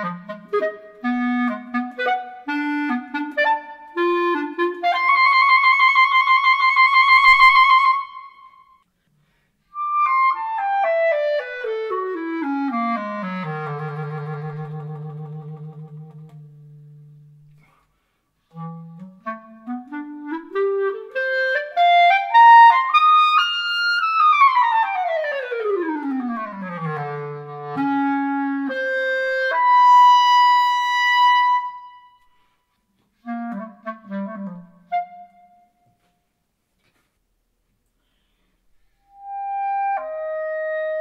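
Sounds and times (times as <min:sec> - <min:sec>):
solo clarinet playing: 0:00.0 - 0:08.8, 0:09.7 - 0:17.8, 0:18.4 - 0:32.6, 0:33.2 - 0:36.1, 0:39.0 - 0:41.0.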